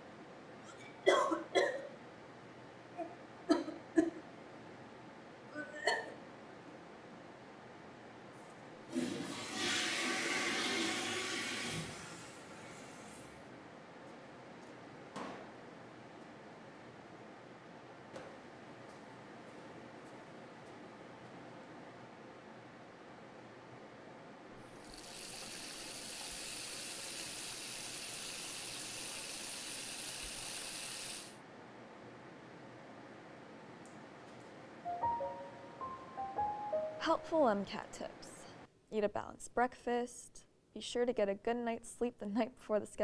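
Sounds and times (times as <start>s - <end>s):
toilet flushing: 8.9s - 13.1s, 24.6s - 31.4s
water running from sink tap: 24.7s - 31.4s.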